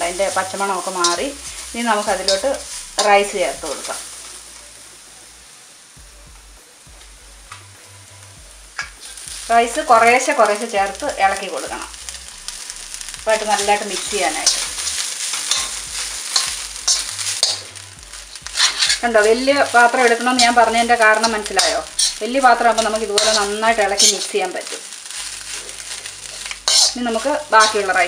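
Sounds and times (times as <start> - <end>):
metal spoon scraping a wok: 0.0 - 4.4, 13.0 - 28.0
faint frying sizzle: 0.0 - 28.0.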